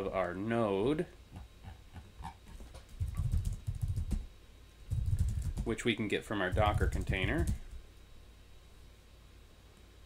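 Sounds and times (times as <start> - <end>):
computer keyboard typing: 2.8 - 4.3, 4.9 - 5.8, 6.5 - 7.7.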